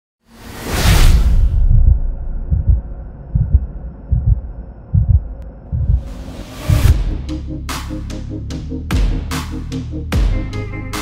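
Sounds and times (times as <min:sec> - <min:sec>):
swoosh: 0:00.3 - 0:07.4
low drone: 0:00.7 - 0:07.7
deep bass thumps: 0:01.5 - 0:07.4.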